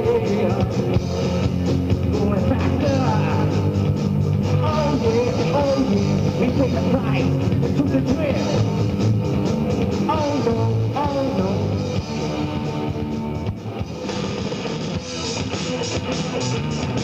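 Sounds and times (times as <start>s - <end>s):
hard rock band playing live: 0.0s - 17.0s.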